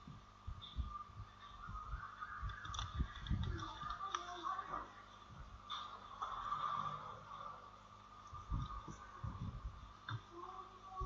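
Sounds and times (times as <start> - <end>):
faint steady hum: 0.0 - 11.0
soft low thuds: 8.3 - 10.3.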